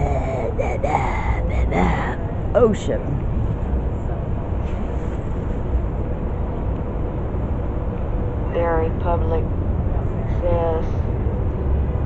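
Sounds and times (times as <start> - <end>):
person speaking: 0.0 - 3.1
faint steady hum: 0.0 - 4.5
city street traffic rumble: 0.0 - 12.0.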